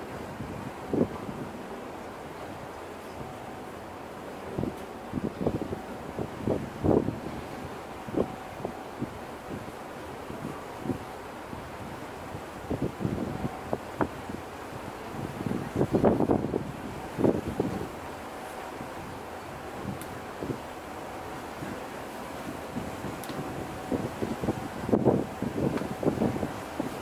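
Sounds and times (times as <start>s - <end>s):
ship engine noise: 0.0s - 27.0s
wind buffeting microphone: 0.0s - 27.0s.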